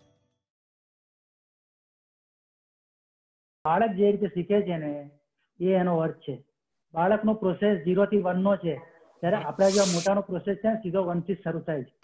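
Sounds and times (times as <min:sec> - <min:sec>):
man talking: 0:07.0 - 0:11.9
bright hiss: 0:09.4 - 0:10.1.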